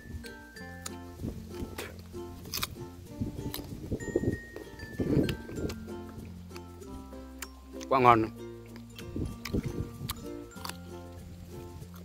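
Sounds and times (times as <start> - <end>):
background music: 0.0 - 12.0
man chewing fruit: 0.0 - 12.0.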